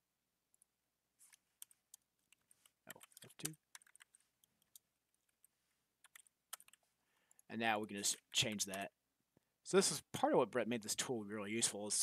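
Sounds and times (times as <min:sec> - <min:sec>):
keyboard typing clicks: 0:01.6 - 0:04.8, 0:06.0 - 0:07.5
person speaking: 0:02.7 - 0:03.8, 0:07.3 - 0:09.0, 0:09.6 - 0:12.0.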